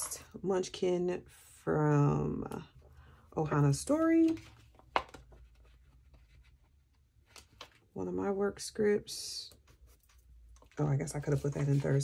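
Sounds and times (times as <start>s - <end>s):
paper sheets rustling: 9.6s - 12.0s.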